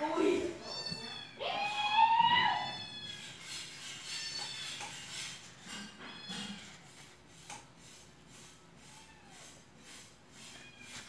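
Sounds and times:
cat meowing: 0.5 - 3.3, 8.8 - 9.6.

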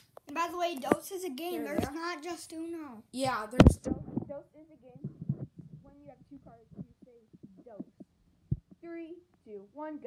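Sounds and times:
children talking quietly: 0.2 - 8.1.

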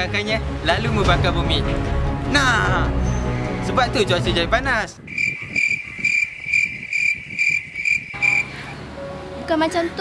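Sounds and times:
cricket chirping: 5.1 - 8.5.

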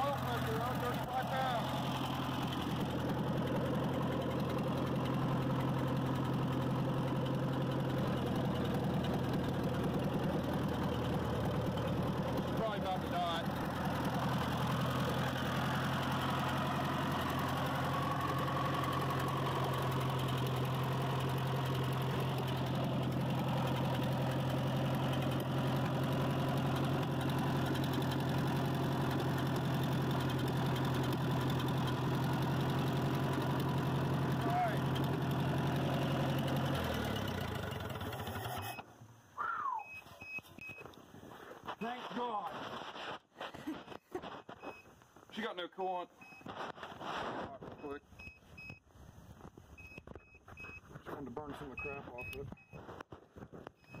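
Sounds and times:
tractor engine idling: 0.0 - 39.3.

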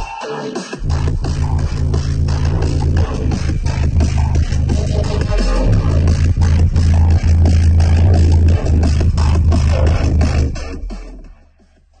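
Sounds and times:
electronic music with booming bass: 0.0 - 12.0.

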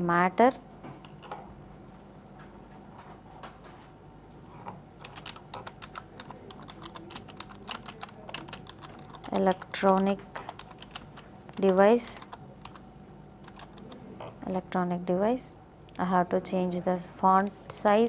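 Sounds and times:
typing on computer keyboard: 5.0 - 12.8, 13.4 - 14.0.

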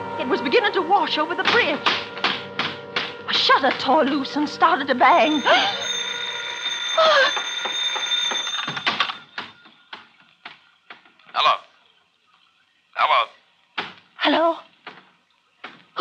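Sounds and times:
voice: 0.2 - 1.9, 3.3 - 5.9, 11.4 - 11.7, 13.0 - 13.3, 14.2 - 14.6
sharp knocks: 1.4 - 3.9.

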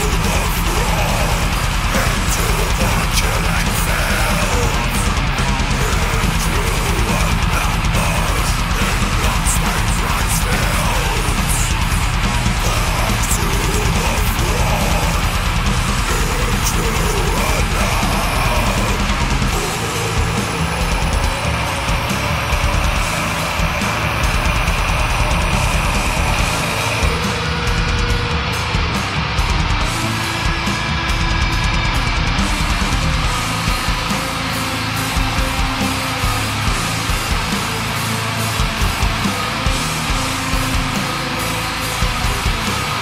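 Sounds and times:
death metal band playing: 0.0 - 43.0
distorted electric guitars: 0.0 - 43.0
fast dense drumming: 0.0 - 43.0.

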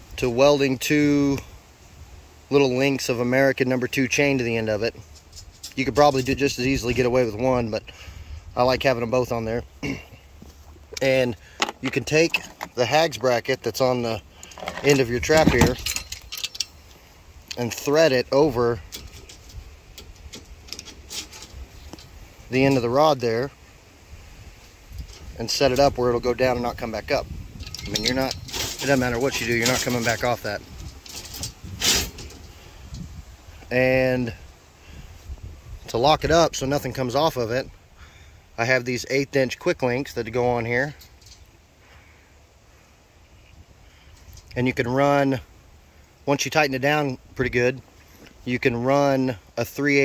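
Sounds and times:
wind rumble on microphone: 4.8 - 9.7, 14.9 - 16.3, 23.5 - 38.0.

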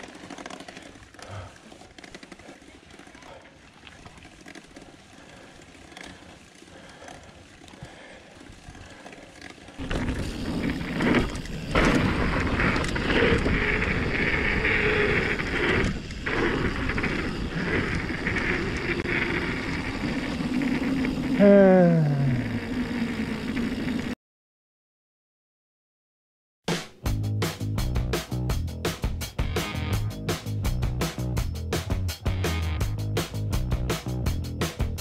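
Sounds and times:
bike frame rattle: 0.0 - 19.5
bike tyres on gravel: 0.0 - 24.1.

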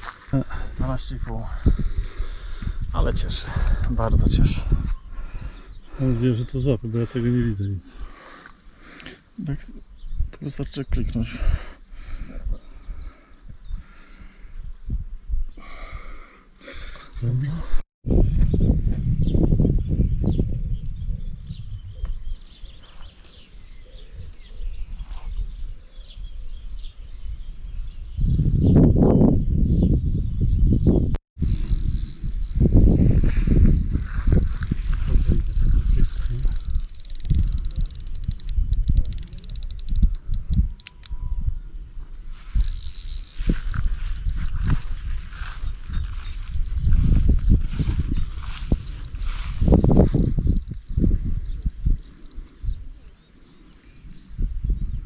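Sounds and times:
rumble and rustle on microphone: 24.2 - 25.8, 31.4 - 40.6, 42.3 - 53.1
fishing reel clicking: 31.4 - 41.2, 42.5 - 44.8, 48.8 - 51.0, 51.6 - 52.6.

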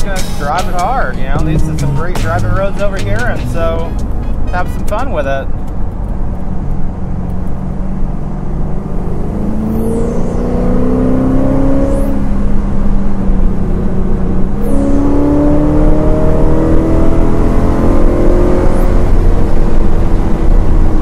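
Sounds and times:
car engine accelerating hard: 0.0 - 21.0.

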